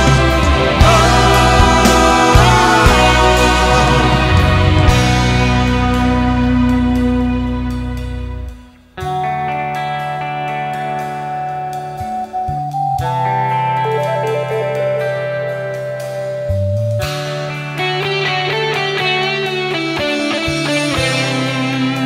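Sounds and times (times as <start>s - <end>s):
drums: 0.0s - 22.0s
electric guitar lead melody: 0.0s - 22.0s
keyboards: 0.0s - 22.0s
sustained bass: 0.0s - 22.0s.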